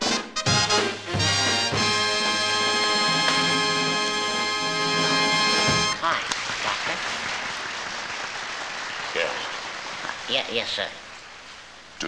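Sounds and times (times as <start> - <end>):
band music: 0.0 - 6.0
crowd applauding: 2.9 - 11.4.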